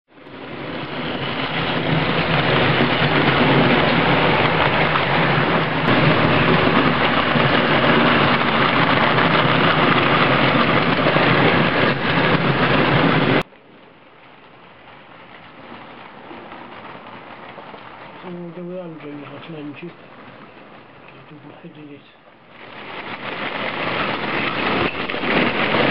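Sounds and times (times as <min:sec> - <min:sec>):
model train rumbling on track: 0:00.1 - 0:25.9
model steam locomotive running: 0:00.2 - 0:25.9.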